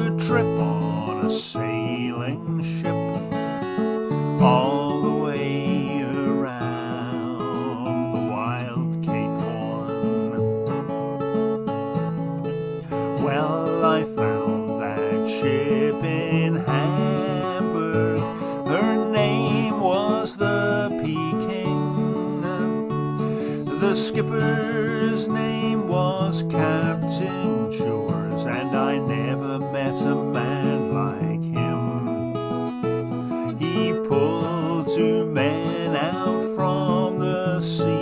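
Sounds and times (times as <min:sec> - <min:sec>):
man singing: 0:00.0 - 0:03.4, 0:04.4 - 0:11.4, 0:12.8 - 0:32.5, 0:33.3 - 0:38.0
acoustic guitar strummed: 0:00.0 - 0:38.0.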